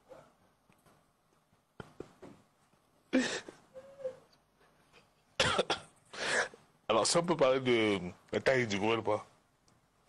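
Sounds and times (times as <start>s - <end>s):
person coughing: 3.1s - 3.6s, 5.4s - 6.0s.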